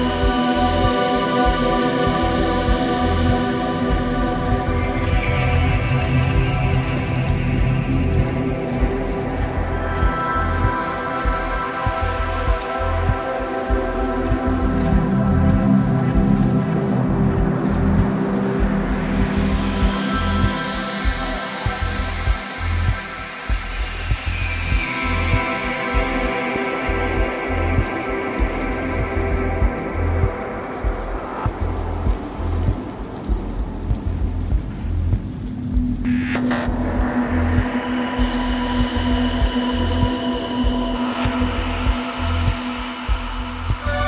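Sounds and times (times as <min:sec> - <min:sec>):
pulsing bass beat: 0:00.0 - 0:44.0
sustained synth pads: 0:00.0 - 0:44.0
deep held tone: 0:36.0 - 0:44.0.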